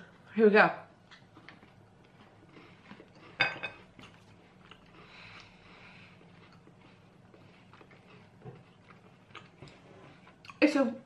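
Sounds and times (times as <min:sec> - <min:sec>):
chewing and mouth sounds: 0:01.1 - 0:10.6.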